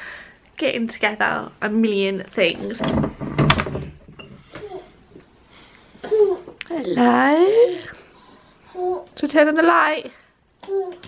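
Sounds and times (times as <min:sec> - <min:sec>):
door thud: 0:02.6 - 0:04.2.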